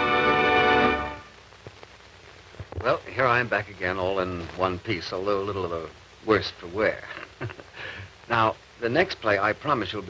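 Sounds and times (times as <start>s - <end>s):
tv theme music: 0.0s - 1.3s
faint hiss: 0.0s - 10.0s.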